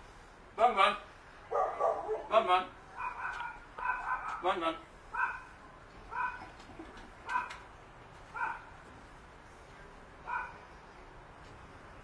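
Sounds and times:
puppy barking: 1.5 - 2.3, 3.0 - 6.5, 7.2 - 7.6, 8.3 - 8.7, 10.2 - 10.6.

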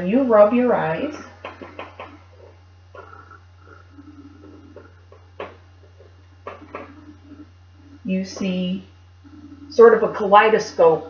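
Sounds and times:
low electrical hum: 0.0 - 11.0
marker squeaking on whiteboard: 1.4 - 7.5.

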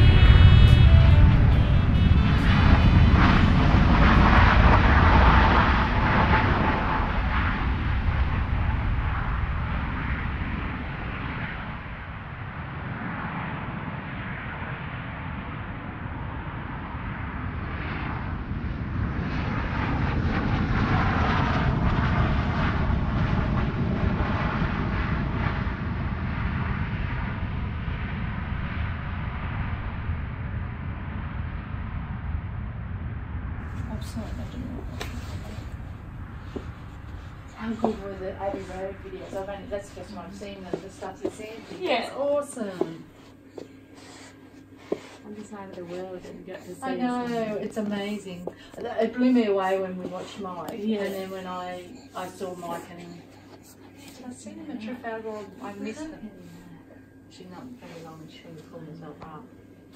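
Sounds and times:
jet aircraft engine: 0.0 - 41.6.

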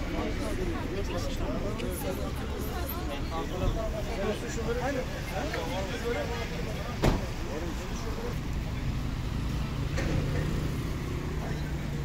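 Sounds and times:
bystanders' voices: 0.0 - 12.0
traffic engines rumbling: 0.0 - 12.0.

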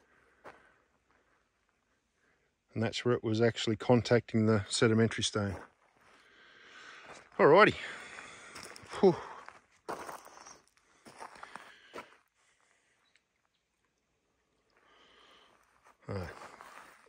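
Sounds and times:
footsteps crunching on gravel: 5.4 - 6.3, 7.0 - 12.2, 15.6 - 17.0.

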